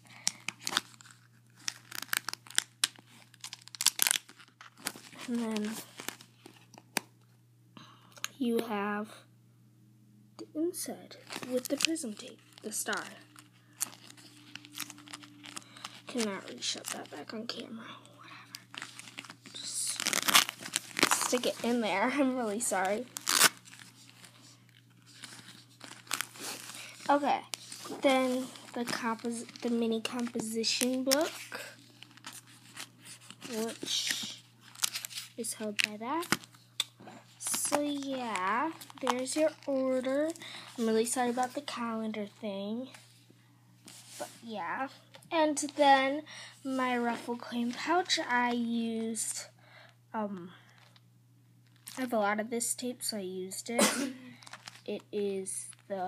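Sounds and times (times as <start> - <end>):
duct tape crinkling: 0.0 - 7.3, 11.2 - 17.6, 18.3 - 43.1, 51.6 - 52.1, 53.8 - 56.0.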